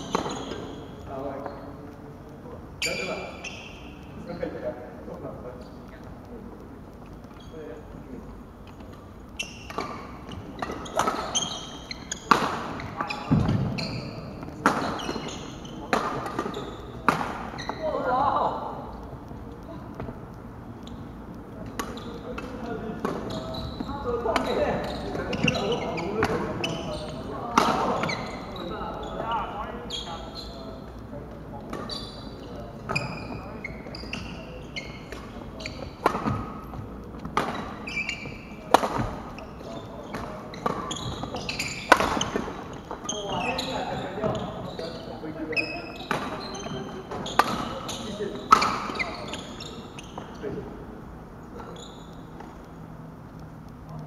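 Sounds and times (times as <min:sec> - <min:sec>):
people talking: 0:00.0 - 0:08.4, 0:10.6 - 0:20.2, 0:20.9 - 0:36.8, 0:38.5 - 0:50.8
voices in a sports hall: 0:00.0 - 0:54.0
rackets hitting shuttlecocks: 0:08.8 - 0:13.7, 0:14.4 - 0:17.6, 0:24.1 - 0:28.2, 0:35.0 - 0:39.4, 0:40.1 - 0:43.0
footsteps on wooden court: 0:34.8 - 0:38.4.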